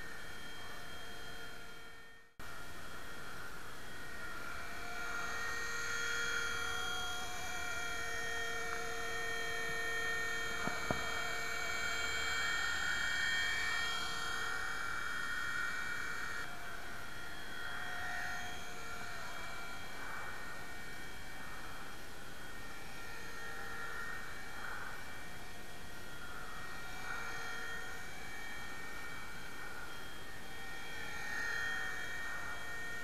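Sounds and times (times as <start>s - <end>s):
rc helicopter motor whine: 0.0s - 33.0s.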